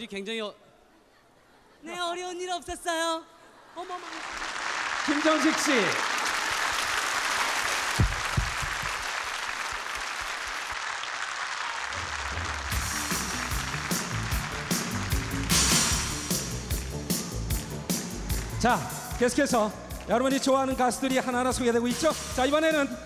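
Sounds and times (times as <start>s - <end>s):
audience applauding: 3.8s - 21.3s
band music with bass beat: 12.7s - 23.0s.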